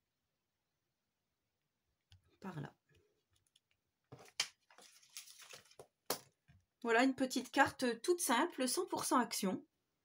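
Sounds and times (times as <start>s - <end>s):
card scuffing rustle: 4.1s - 5.9s.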